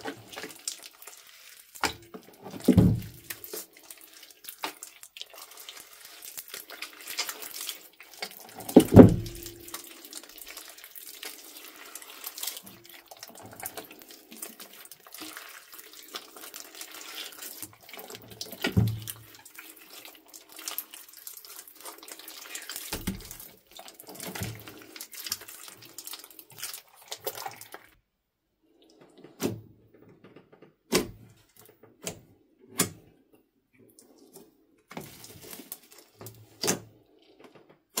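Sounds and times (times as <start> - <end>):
slime squelching and crackling: 0.0 - 28.0, 33.9 - 37.3.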